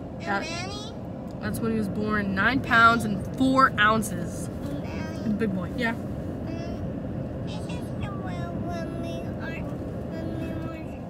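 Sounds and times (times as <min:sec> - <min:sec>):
low rumble of car: 0:00.0 - 0:11.0
voices talking indistinctly: 0:00.2 - 0:11.0.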